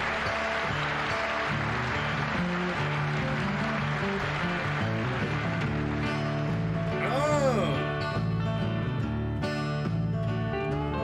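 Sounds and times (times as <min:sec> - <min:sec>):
acoustic guitar: 0:00.0 - 0:11.0
person counting in: 0:07.0 - 0:08.0.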